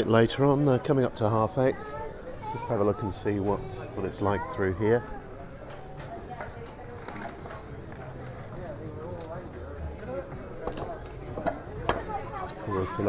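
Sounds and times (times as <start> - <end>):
distant people chatting: 0.0 - 13.0
footsteps on tiled paving: 5.1 - 13.0.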